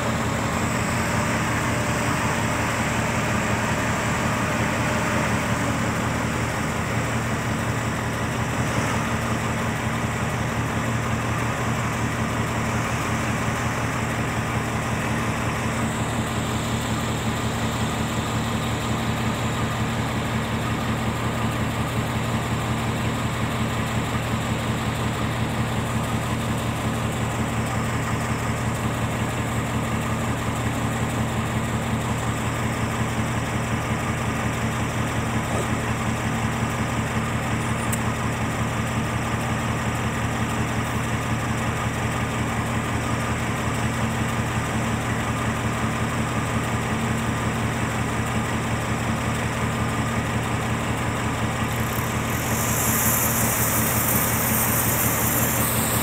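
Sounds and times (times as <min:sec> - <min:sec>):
heavy diesel engines droning: 0:00.0 - 0:56.0.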